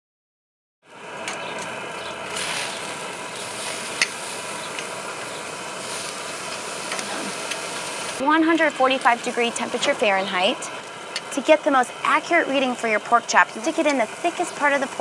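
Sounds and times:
meat sizzling on a grill: 2.2s - 15.0s.

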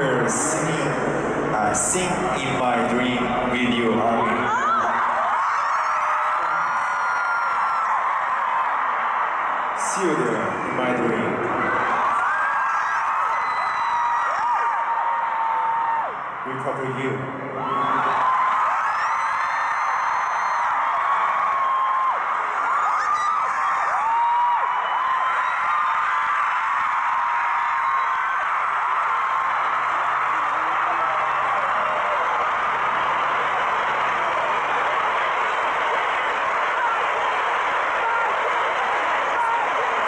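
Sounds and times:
crowd screaming and cheering: 0.0s - 40.0s.

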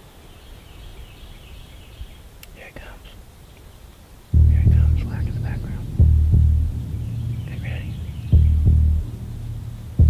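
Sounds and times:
low drone hum: 4.3s - 10.0s
heartbeat thump: 4.4s - 10.0s.

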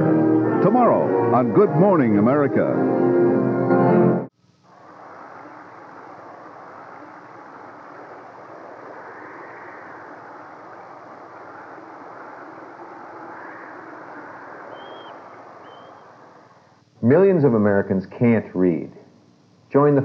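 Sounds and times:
wind rushing: 4.7s - 16.8s.

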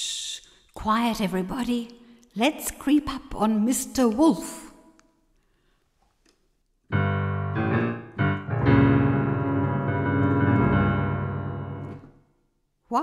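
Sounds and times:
piano chords: 6.9s - 12.2s.

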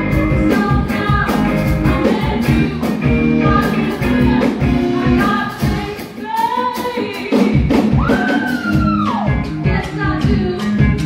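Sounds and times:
live band: 0.0s - 11.0s
women singing pop-soul song: 0.0s - 11.0s.

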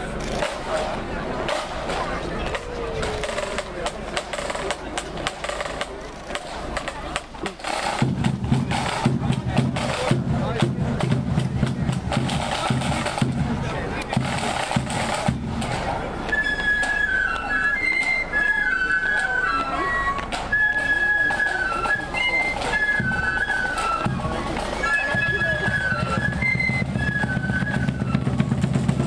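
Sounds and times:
heavy drum beat: 0.4s - 16.2s, 24.0s - 29.0s
flutes playing a tune: 1.5s - 5.9s, 6.8s - 29.0s.

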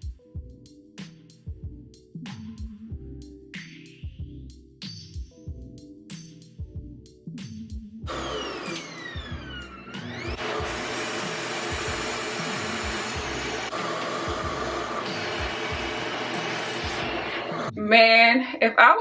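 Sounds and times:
hair dryer motor whine and airflow: 8.1s - 17.8s.

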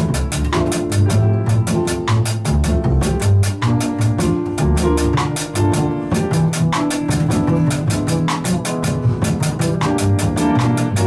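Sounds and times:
acoustic piano: 0.0s - 11.0s
double bass: 0.0s - 11.0s.

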